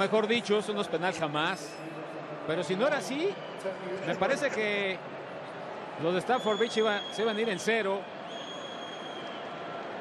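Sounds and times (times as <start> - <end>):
stadium crowd murmur: 0.0 - 10.0
high whistle tone: 8.3 - 9.5.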